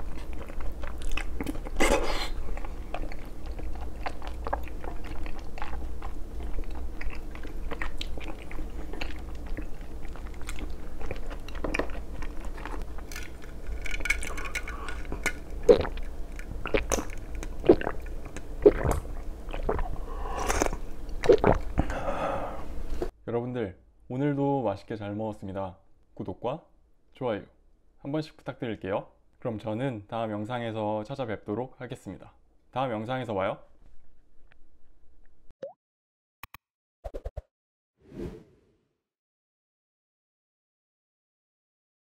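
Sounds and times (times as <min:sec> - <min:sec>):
person gulping a drink: 0:14.3 - 0:22.0.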